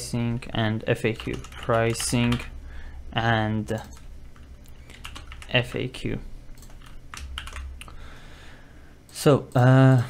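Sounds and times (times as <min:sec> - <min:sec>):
typing on computer keyboard: 0:01.1 - 0:02.5, 0:03.8 - 0:05.9, 0:06.6 - 0:08.0.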